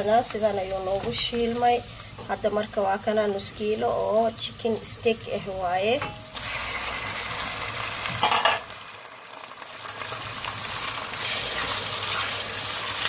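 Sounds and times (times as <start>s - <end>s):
chicken sizzling in hot oil: 0.0s - 13.0s.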